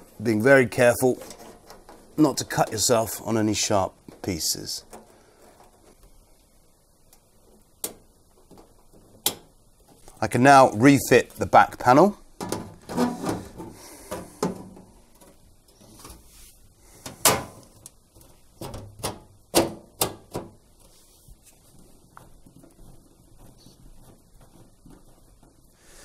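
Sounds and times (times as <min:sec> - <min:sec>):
panel knocking and clacking: 0:18.6 - 0:20.6.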